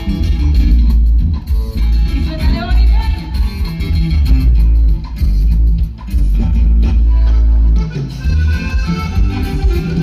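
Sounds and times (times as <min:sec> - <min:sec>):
heavy bass line: 0:00.0 - 0:10.0
live band dance music: 0:00.0 - 0:10.0
plucked guitar: 0:00.0 - 0:10.0.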